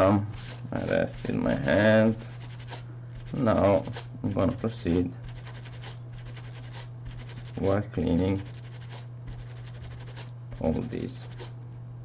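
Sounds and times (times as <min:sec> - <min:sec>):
cloth scrubbing glass: 0:00.0 - 0:11.5
steady low hum: 0:00.0 - 0:12.0.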